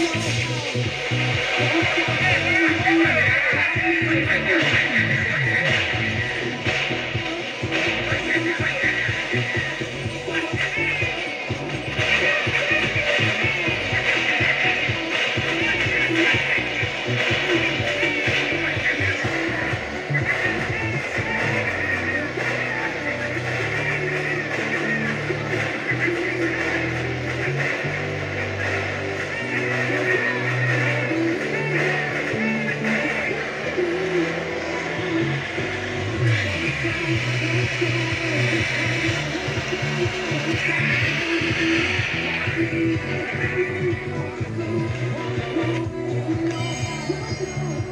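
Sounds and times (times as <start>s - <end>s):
vehicle running noise: 0.0s - 46.7s
pop music on radio: 0.0s - 47.9s.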